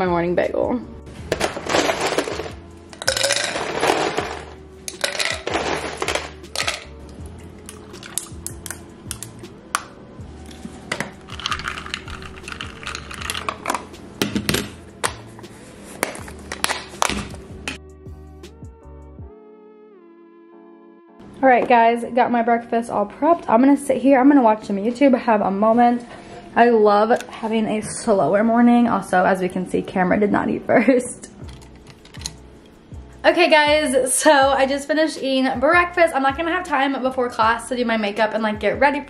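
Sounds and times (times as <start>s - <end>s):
soft background music: 0.0s - 39.0s
ice cubes clinking in glass: 1.4s - 6.9s, 11.2s - 13.8s
liquid pouring into glass: 7.2s - 8.4s.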